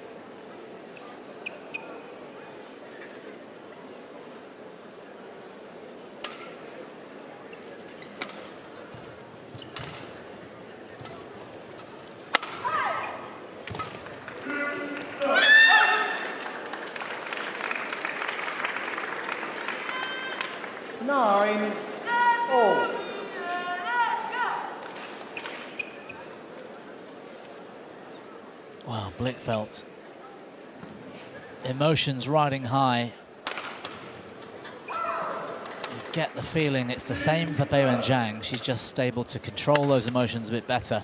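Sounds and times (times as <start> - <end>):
crowd cheering and applauding: 14.3 - 21.0
loud shouting: 14.4 - 16.4, 22.0 - 24.8, 34.9 - 35.6.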